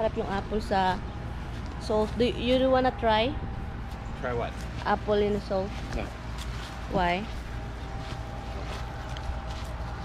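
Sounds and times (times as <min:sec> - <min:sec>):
faint steady hum: 0:00.0 - 0:10.0
low fluttering rumble: 0:00.0 - 0:10.0.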